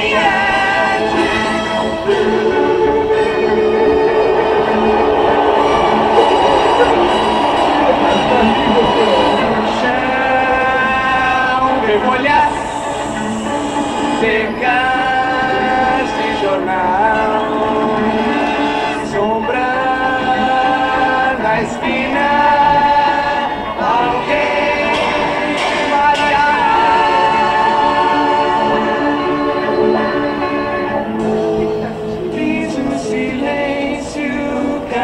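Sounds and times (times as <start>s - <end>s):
voices singing in harmony: 0.0s - 35.0s.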